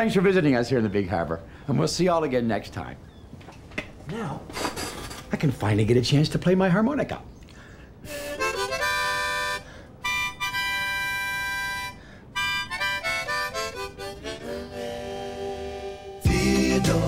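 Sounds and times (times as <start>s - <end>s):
harmonica playing: 8.0s - 17.0s.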